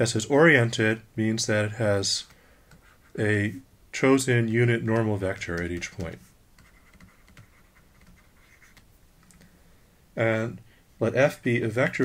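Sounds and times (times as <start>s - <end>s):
stylus scratching on pen tablet: 2.7s - 3.2s, 4.9s - 8.8s
stylus tapping on tablet: 4.9s - 8.8s.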